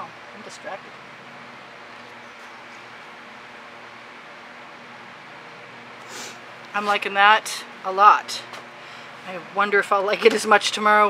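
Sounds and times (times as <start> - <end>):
background hiss: 6.0 - 7.0.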